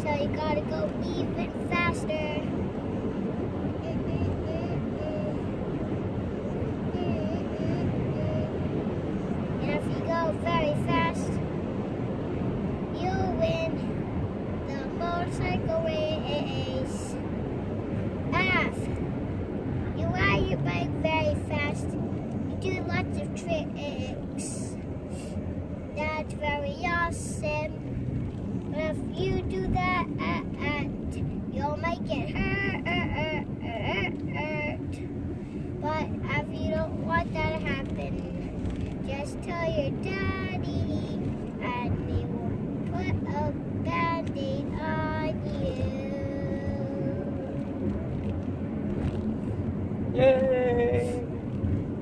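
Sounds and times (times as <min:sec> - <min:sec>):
young child singing: 0:00.0 - 0:02.6, 0:03.7 - 0:05.5, 0:06.8 - 0:08.7, 0:09.6 - 0:11.4, 0:12.9 - 0:13.9, 0:14.6 - 0:17.2, 0:18.3 - 0:19.0, 0:20.0 - 0:25.3, 0:25.9 - 0:27.8, 0:28.7 - 0:35.0, 0:35.8 - 0:47.7.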